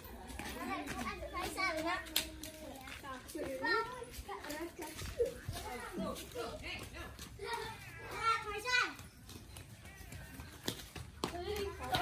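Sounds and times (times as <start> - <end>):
children calling and shouting: 0.0 - 12.0.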